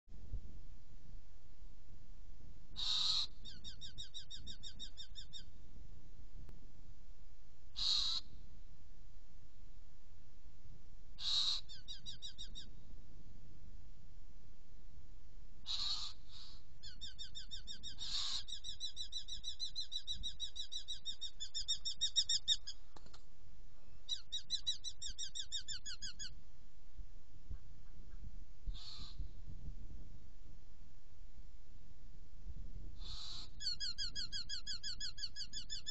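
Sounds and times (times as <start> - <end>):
harsh rasping bird calls: 2.7 - 5.5, 7.7 - 8.4, 11.2 - 12.7, 15.6 - 22.9, 24.1 - 26.4, 27.8 - 29.3, 33.0 - 35.9
harsh screechy bird call: 2.8 - 3.4, 7.8 - 8.2, 11.2 - 12.1, 15.7 - 16.6, 17.9 - 18.8, 28.8 - 29.2, 33.0 - 35.9.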